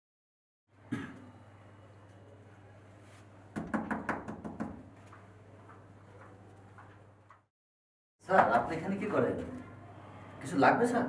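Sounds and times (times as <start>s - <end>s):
knocking on wooden door: 3.6s - 4.9s.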